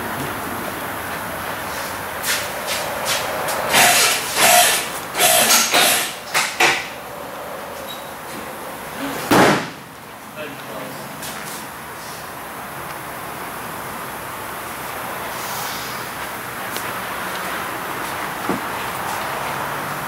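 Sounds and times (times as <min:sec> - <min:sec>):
steady workshop hum: 0:00.0 - 0:20.0.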